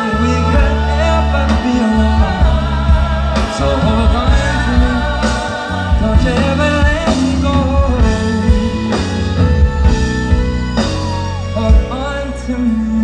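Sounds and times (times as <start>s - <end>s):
live band with singer: 0.0s - 13.0s.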